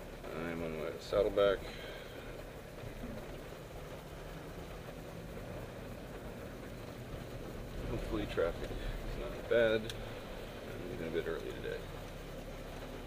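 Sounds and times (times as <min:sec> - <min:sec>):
car engine hum: 0:00.0 - 0:13.0
hiss of rain and wet road: 0:00.0 - 0:13.0.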